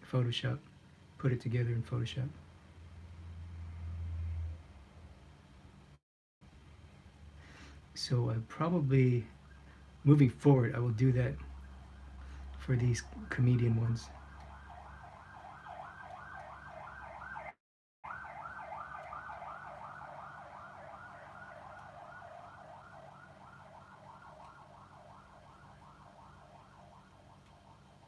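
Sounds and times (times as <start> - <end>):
siren yelping: 11.3 - 28.0.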